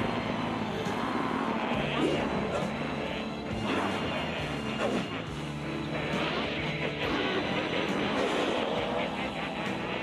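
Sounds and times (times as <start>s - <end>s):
roaring sound effect: 0.0s - 10.0s.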